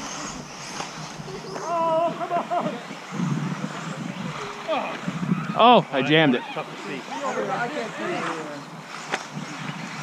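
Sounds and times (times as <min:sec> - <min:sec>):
rc buggies running: 0:00.0 - 0:10.0
voices chatting: 0:00.0 - 0:10.0.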